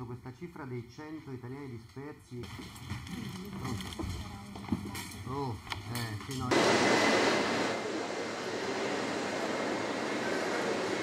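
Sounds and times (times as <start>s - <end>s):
airport terminal rushing noise: 6.5s - 11.0s.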